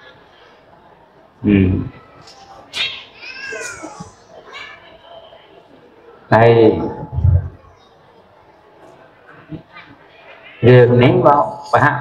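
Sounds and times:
faint high-pitched mewing cry: 2.7 - 5.0.

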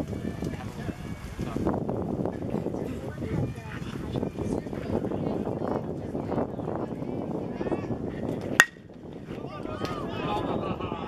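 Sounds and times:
spectators' voices: 0.0 - 11.0
metal bat hitting ball: 8.6 - 8.8.

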